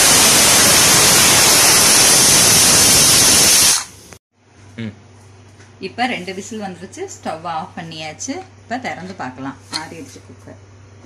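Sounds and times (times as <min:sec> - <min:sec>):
pressure cooker whistling: 0:00.0 - 0:04.0.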